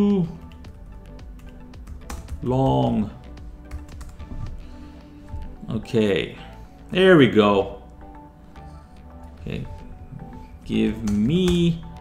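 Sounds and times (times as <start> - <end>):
computer keyboard typing: 0.4 - 2.4, 3.7 - 4.2.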